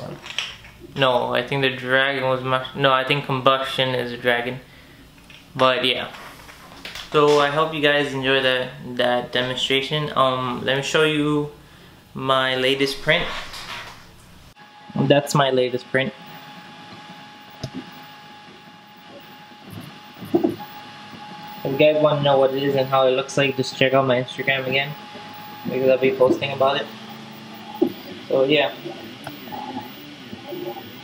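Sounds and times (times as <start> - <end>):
cooling fans hissing: 0.0 - 31.0
stepper motors whining: 12.9 - 31.0.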